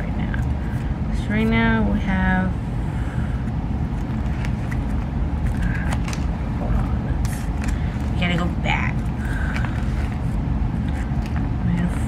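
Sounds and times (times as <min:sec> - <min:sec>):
steady low rumble: 0:00.0 - 0:12.0
plastic sleeves rustling: 0:03.4 - 0:12.0.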